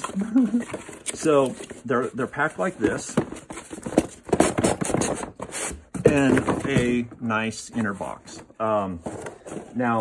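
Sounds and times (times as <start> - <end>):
cardboard rubbing and scraping: 0.0 - 7.0.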